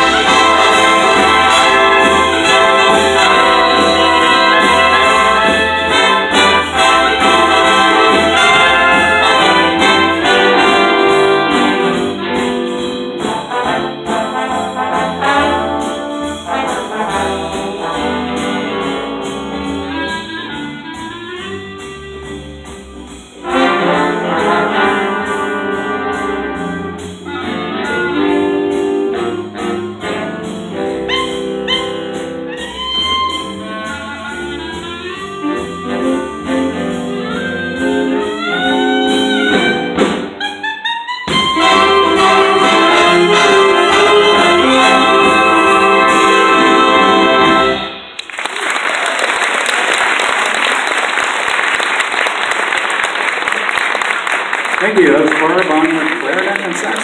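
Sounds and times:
big band playing jazz: 0:00.0 - 0:57.0
audience applause: 0:48.2 - 0:57.0.

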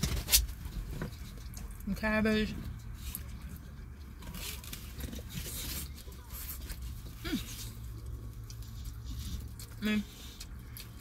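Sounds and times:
low vehicle hum: 0:00.0 - 0:11.0.

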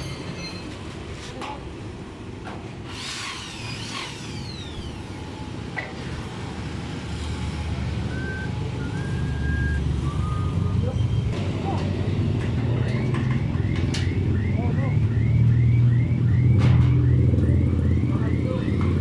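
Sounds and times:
high falling squeals: 0:00.0 - 0:00.8, 0:03.0 - 0:05.6, 0:07.4 - 0:11.4.

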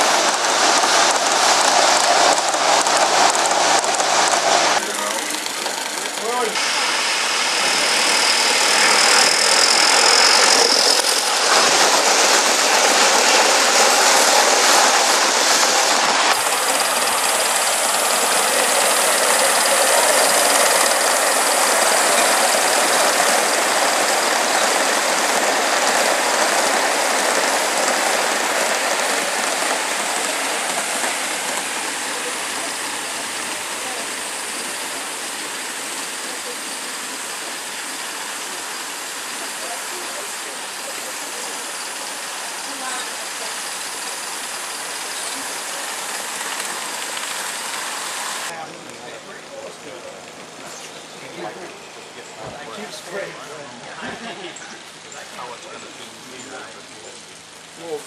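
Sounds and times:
model locomotive exhaust beat: 0:00.0 - 0:53.3
model train hissing on track: 0:00.0 - 0:58.0.

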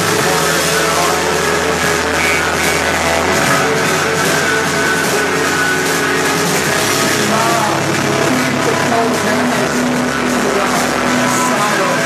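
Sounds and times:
bass notes: 0:00.0 - 0:12.0
distorted electric guitars: 0:00.0 - 0:12.0
drums with cymbal wash: 0:00.0 - 0:12.0.

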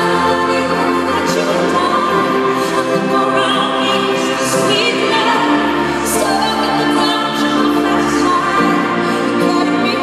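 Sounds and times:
choir-like backing voices: 0:00.0 - 0:10.0.

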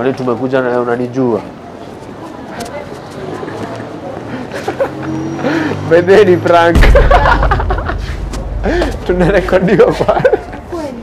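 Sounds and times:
people talking: 0:09.0 - 0:11.0.

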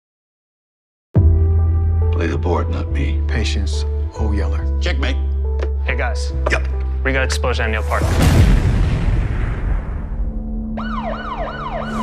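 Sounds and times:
loud explosion rumble: 0:08.0 - 0:10.5
emergency vehicle siren yelping: 0:10.8 - 0:12.0.

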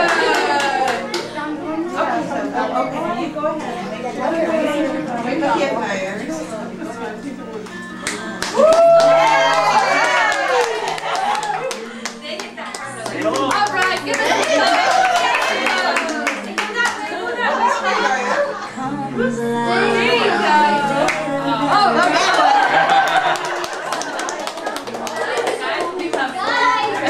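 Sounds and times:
people clapping: 0:00.0 - 0:01.4, 0:07.6 - 0:17.3, 0:21.0 - 0:27.0
indistinct voices: 0:00.0 - 0:27.0.

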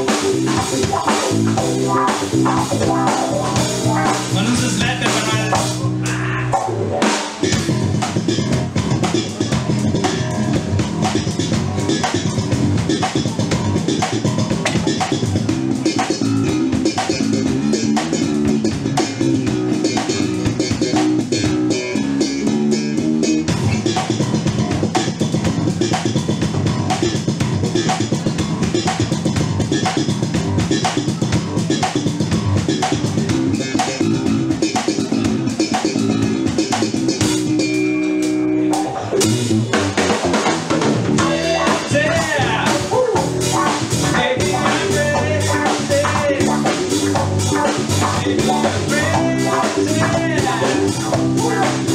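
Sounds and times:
live band playing: 0:00.0 - 0:51.9.

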